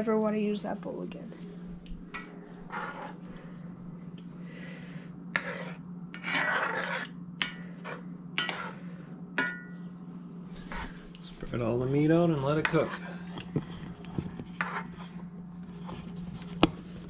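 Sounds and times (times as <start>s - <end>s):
steady low hum: 0.0s - 17.0s
metal spoon scraping skillet: 2.1s - 3.2s, 5.3s - 8.8s, 11.8s - 13.1s.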